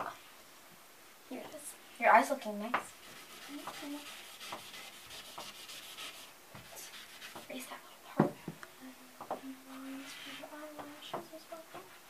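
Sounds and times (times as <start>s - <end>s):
eraser rubbing on chalkboard: 2.9s - 7.6s, 9.7s - 11.0s.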